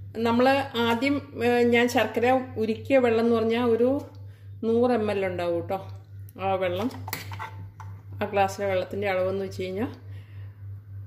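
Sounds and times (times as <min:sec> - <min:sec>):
low steady hum: 0:00.0 - 0:11.0
woman speaking: 0:00.1 - 0:07.1, 0:08.2 - 0:10.1
metal spoon scraping steel pot: 0:06.8 - 0:08.0.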